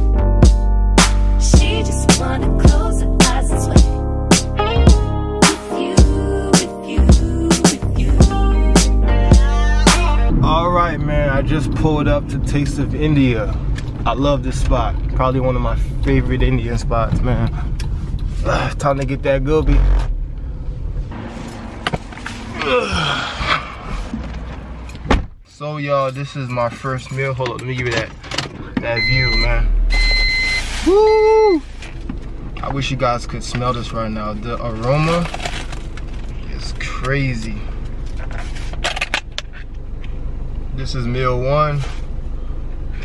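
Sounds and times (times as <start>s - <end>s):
car rumble from inside cabin: 7.1s - 25.4s, 26.2s - 43.0s.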